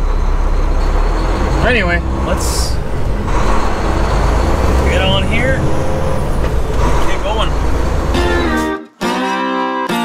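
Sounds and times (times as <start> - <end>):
truck diesel engine drone: 0.0 - 8.8.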